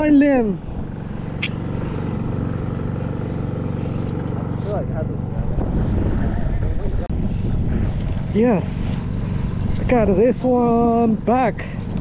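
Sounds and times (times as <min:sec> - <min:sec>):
low engine drone: 0:00.0 - 0:12.0
rough low rumble and knocking: 0:00.8 - 0:12.0.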